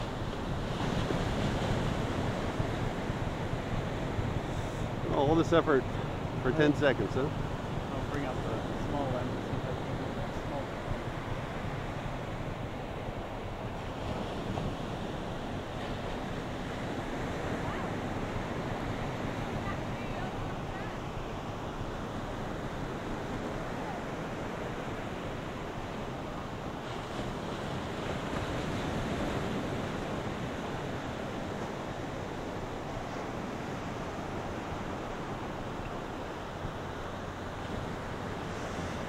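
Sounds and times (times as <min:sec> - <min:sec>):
ocean surf breaking: 0:00.0 - 0:39.0.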